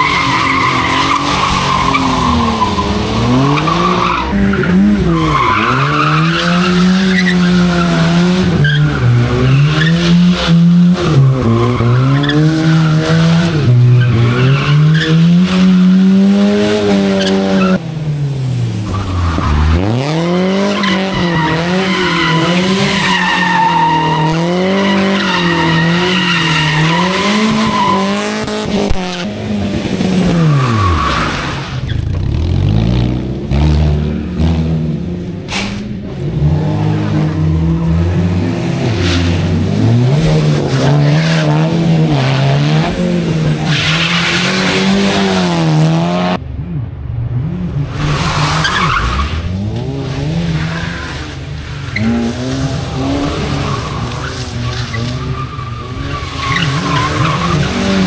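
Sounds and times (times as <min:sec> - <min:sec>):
tyres squealing and skidding: 0:00.0 - 0:17.8, 0:18.8 - 0:29.2, 0:29.9 - 0:32.4, 0:35.5 - 0:45.9, 0:47.8 - 0:58.0
car engine revving: 0:00.0 - 0:58.0.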